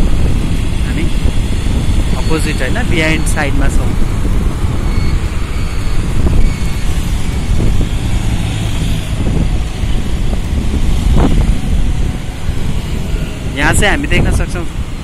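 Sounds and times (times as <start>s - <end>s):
road traffic noise: 0.0s - 15.0s
wind rumbling on microphone: 0.0s - 15.0s.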